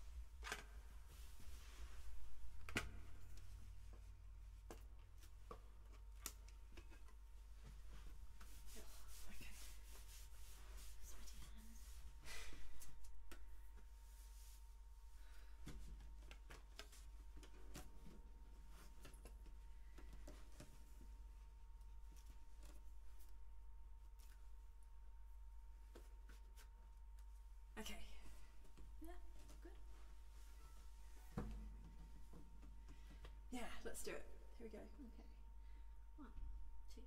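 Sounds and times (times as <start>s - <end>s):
low electrical hum: 0.0s - 37.0s
rustling and rubbing: 3.2s - 12.2s, 12.9s - 15.1s.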